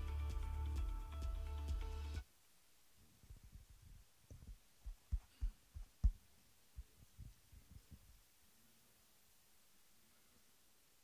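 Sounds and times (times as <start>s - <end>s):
dull low thumps: 4.3s - 6.2s.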